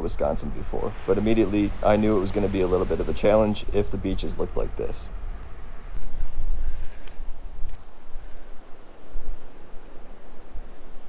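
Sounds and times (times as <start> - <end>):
waves breaking on beach: 0.0 - 11.0
wind buffeting microphone: 0.0 - 11.0.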